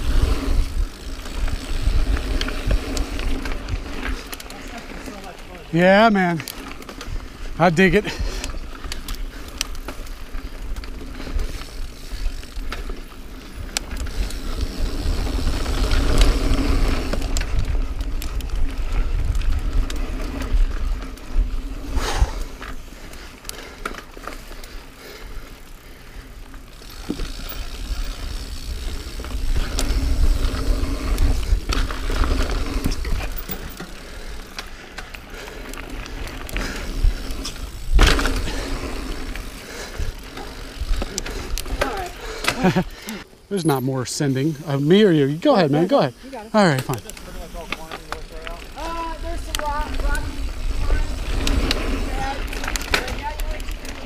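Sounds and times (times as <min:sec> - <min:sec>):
wind rumbling on microphone: 0:00.0 - 0:04.3, 0:13.6 - 0:22.9, 0:27.1 - 0:33.7, 0:48.7 - 0:54.0
bike tyres rolling on dirt: 0:00.0 - 0:54.0
bike rattling and knocking: 0:25.8 - 0:42.9, 0:45.4 - 0:54.0.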